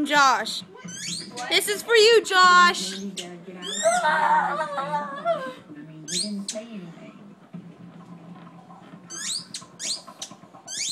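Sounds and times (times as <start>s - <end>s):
squeaky toy squeaking: 0.8s - 1.6s, 9.1s - 10.9s.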